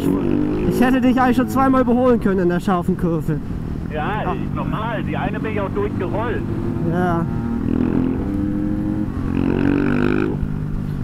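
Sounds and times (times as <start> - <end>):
two-stroke motorcycle engine revving: 0.0 - 1.8, 5.7 - 10.6
road and wind noise: 0.0 - 11.0.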